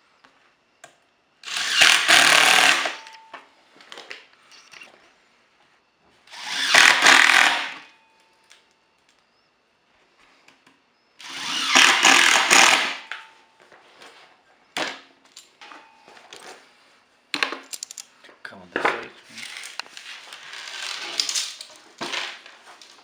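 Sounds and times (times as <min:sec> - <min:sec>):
impact driver driving screws: 0:01.4 - 0:03.2, 0:06.3 - 0:07.9, 0:11.2 - 0:13.2, 0:20.4 - 0:22.2
handling clicks and knocks: 0:17.4 - 0:18.1.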